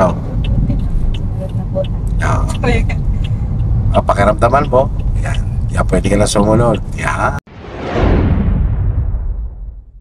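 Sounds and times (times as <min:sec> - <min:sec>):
turn signal ticking: 0:00.0 - 0:07.4
road and engine rumble: 0:00.0 - 0:07.5.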